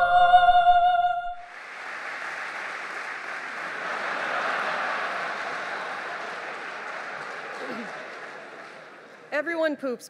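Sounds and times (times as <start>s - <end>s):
audience applauding: 1.4s - 9.5s.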